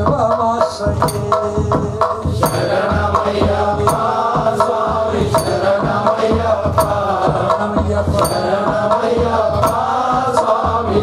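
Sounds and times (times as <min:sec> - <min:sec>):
man chanting into a microphone: 0:00.0 - 0:11.0
sharp percussion strikes: 0:00.0 - 0:11.0.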